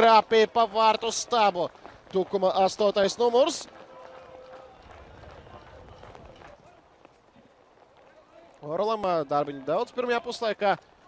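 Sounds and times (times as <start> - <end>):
distant players shouting: 3.0 - 8.6.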